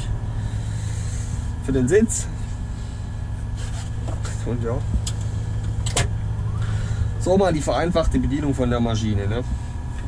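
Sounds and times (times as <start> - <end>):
diesel engine low drone: 0.0 - 10.0.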